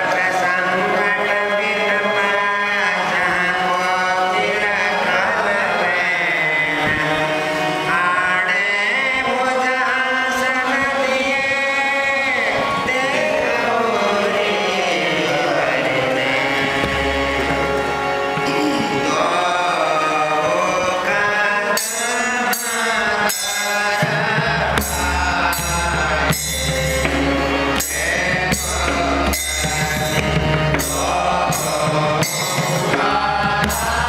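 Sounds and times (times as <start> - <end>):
harmonium drone: 0.0 - 34.0
men singing together: 0.0 - 34.0.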